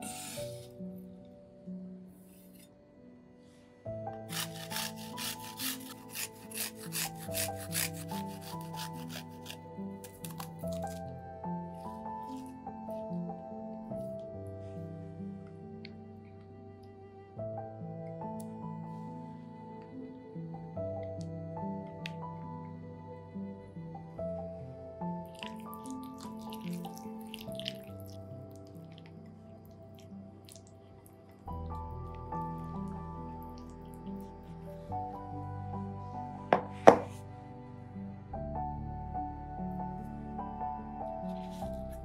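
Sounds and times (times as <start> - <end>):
background music: 0.0 - 42.0
garlic rasping on metal grater: 4.3 - 11.0
spatula squelching through sauce: 25.4 - 28.2.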